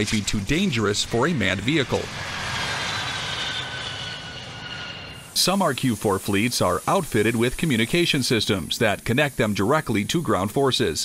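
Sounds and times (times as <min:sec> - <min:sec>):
jet engine rushing and whining: 0:00.0 - 0:09.1.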